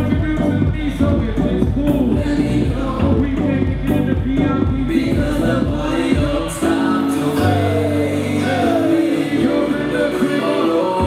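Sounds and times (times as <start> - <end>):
live concert music: 0.0 - 11.0
voices singing: 0.4 - 11.0.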